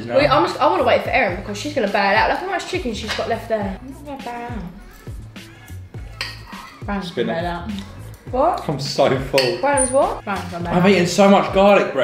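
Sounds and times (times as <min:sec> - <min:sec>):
background music with bass line: 0:00.0 - 0:12.0
cutlery clinking on plates: 0:03.0 - 0:03.5, 0:06.0 - 0:06.9, 0:09.3 - 0:10.6.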